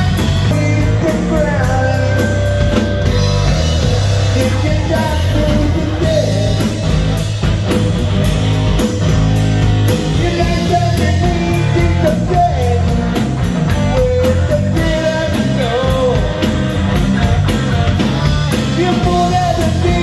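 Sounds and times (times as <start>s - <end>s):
person singing: 0.0s - 7.2s, 9.9s - 17.2s, 18.1s - 20.0s
bass guitar: 0.0s - 20.0s
drum kit with cymbals: 0.0s - 20.0s
electric guitar: 0.0s - 20.0s.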